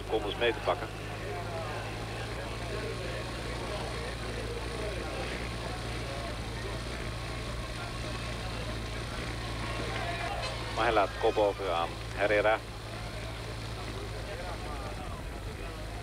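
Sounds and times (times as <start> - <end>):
drone of motor vehicles: 0.0 - 16.0
faint voices: 0.0 - 16.0.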